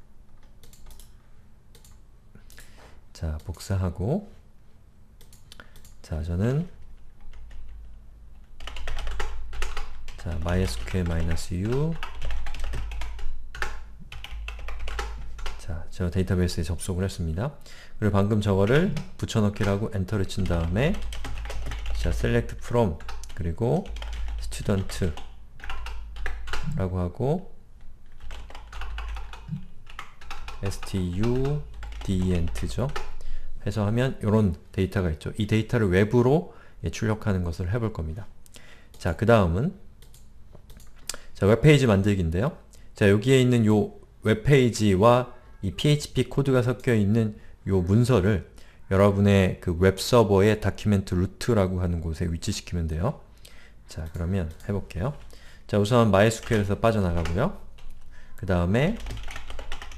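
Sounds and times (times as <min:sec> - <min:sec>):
computer keyboard typing: 0:00.4 - 0:01.1, 0:07.2 - 0:15.6, 0:18.6 - 0:26.8, 0:28.1 - 0:33.2, 0:56.2 - 0:58.1, 0:58.8 - 0:59.9.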